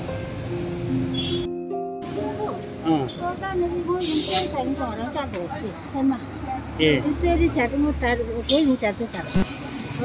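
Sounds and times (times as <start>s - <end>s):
short loud hiss: 4.0s - 4.5s.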